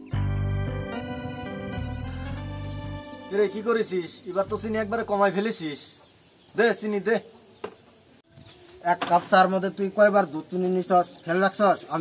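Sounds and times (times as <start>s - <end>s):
man speaking: 3.2s - 6.0s.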